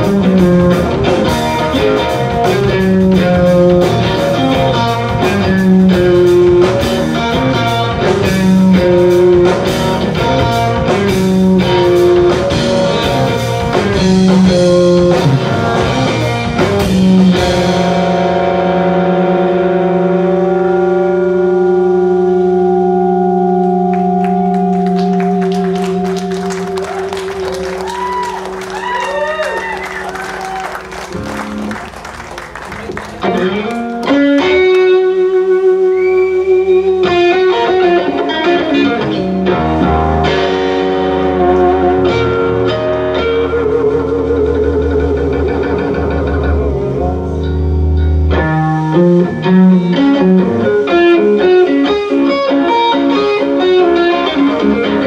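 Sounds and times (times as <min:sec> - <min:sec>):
drums and cymbal hits: 0:00.0 - 0:18.4
sustained electric guitar and bass note: 0:00.0 - 0:29.6, 0:33.0 - 0:53.2.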